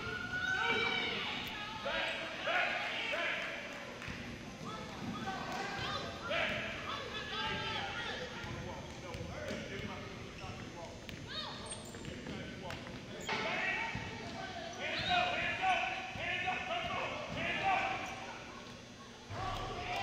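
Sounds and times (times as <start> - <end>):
people shouting in a gym: 0.0 - 10.0, 11.1 - 12.0, 13.2 - 20.0.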